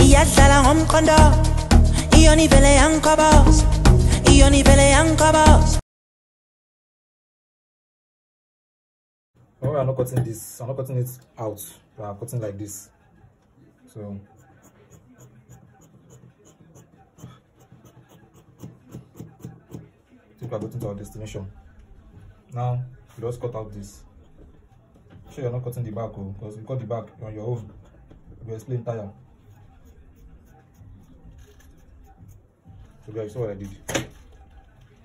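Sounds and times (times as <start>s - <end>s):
scissors snipping fabric: 14.3s - 19.9s.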